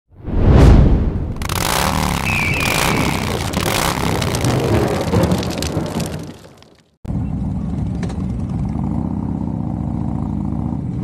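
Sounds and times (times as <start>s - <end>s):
dense crackling rumble: 0.6s - 6.9s
thin whistle: 2.2s - 3.4s.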